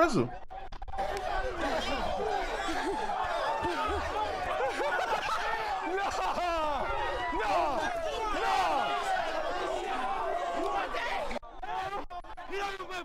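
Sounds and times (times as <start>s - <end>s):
crowd of men talking and shouting: 0.0s - 13.0s.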